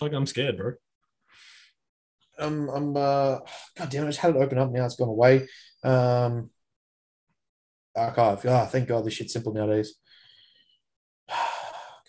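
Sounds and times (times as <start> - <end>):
man sighing: 11.3 - 12.0.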